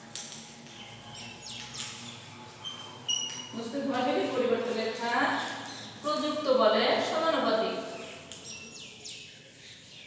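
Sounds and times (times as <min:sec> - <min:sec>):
birds chirping: 0:00.6 - 0:10.0.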